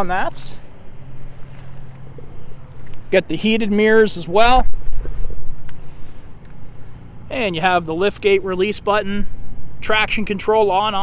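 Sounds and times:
wind rumble: 0.0 - 11.0
microphone handling noise: 4.4 - 6.7.

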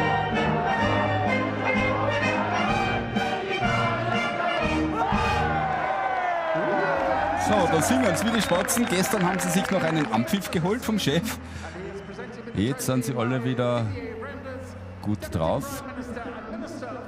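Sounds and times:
orchestra with brass playing: 0.0 - 5.6
crowd singing along: 0.0 - 6.3
crowd shouting and cheering: 0.0 - 16.3.

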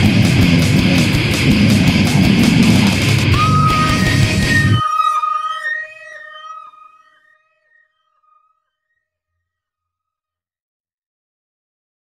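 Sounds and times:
electric guitar feedback squeal: 0.0 - 7.9.

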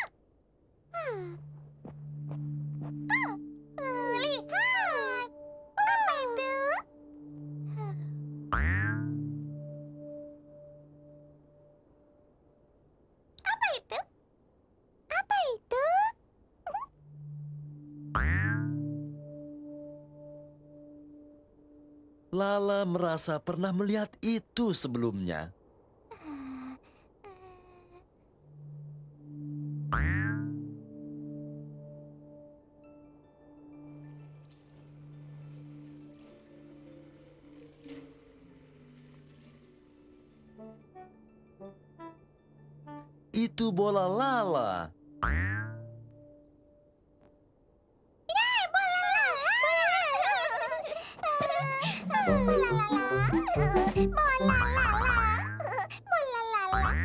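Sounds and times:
sustained musical tones: 1.0 - 12.3, 16.9 - 22.3, 28.4 - 45.2, 51.4 - 54.6
cartoon boing: 7.9 - 9.3, 18.1 - 18.9, 29.9 - 30.7, 45.2 - 46.0, 56.7 - 57.0
warbling cartoon tone: 51.3 - 55.6.

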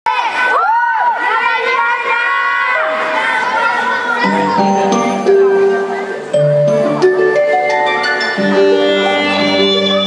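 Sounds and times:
children cheering and shouting: 0.1 - 6.3.

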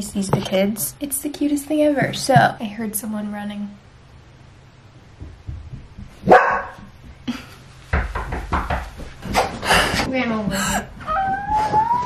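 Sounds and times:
dog barking: 6.2 - 6.9.

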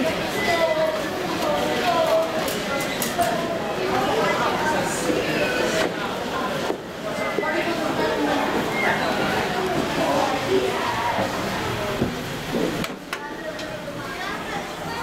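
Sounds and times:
indistinct voices: 0.0 - 15.0.

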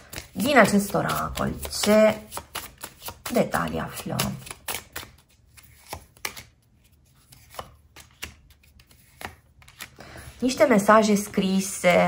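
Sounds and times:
cards snapping and tapping on table: 4.2 - 6.5, 7.3 - 9.9.

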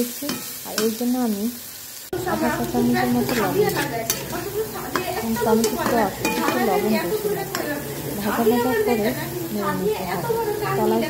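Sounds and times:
woman speaking: 0.0 - 1.6, 2.2 - 11.0
tomato sizzling in a pan: 0.0 - 11.0.

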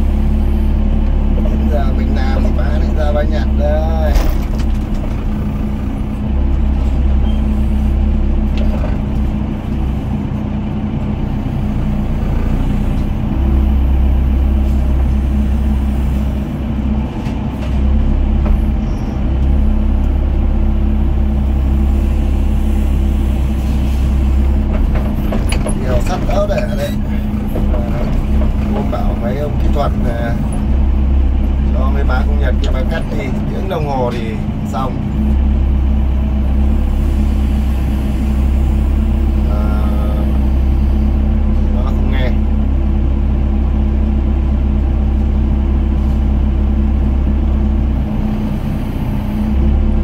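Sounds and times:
excavator diesel engine running: 0.0 - 50.0.

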